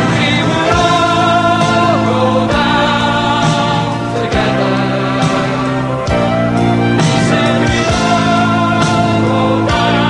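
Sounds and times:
electric guitar and bass: 0.0s - 10.0s
voices singing held notes: 0.0s - 10.0s.

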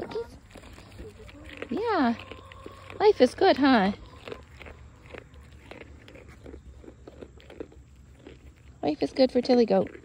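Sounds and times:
goat crunching and chewing: 0.0s - 10.0s.

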